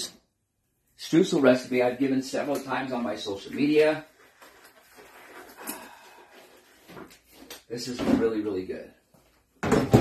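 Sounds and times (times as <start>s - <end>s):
disposable glove rustling: 3.0s - 7.7s.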